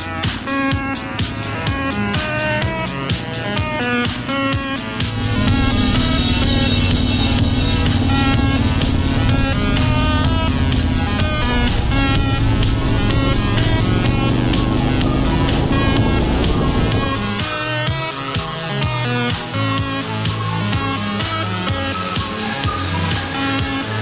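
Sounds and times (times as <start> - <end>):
electronic music with steady beat: 0.0 - 24.0
motorcycle engine accelerating: 1.6 - 17.8.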